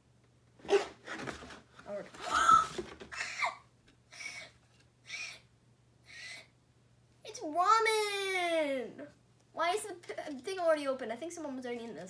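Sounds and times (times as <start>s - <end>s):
girl gasping: 6.1s - 6.5s.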